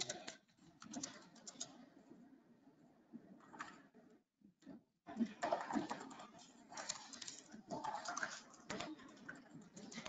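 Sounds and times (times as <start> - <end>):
computer keyboard and mouse clicks: 0.0 - 1.8, 5.4 - 10.0.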